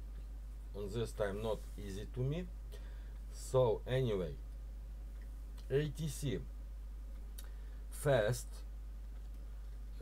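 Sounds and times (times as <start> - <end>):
low electrical hum: 0.0 - 10.0
man speaking: 0.7 - 2.6, 3.3 - 4.4, 5.7 - 6.5, 7.9 - 8.7.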